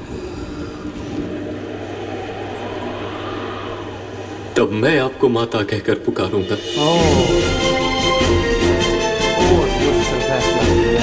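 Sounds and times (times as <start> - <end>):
low drone background score: 0.0 - 11.0.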